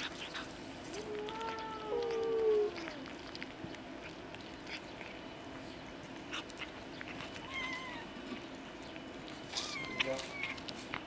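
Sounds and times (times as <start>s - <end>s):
cats chewing wetly: 0.0s - 11.0s
cat mewing: 0.1s - 3.4s, 6.3s - 8.2s, 9.5s - 10.7s.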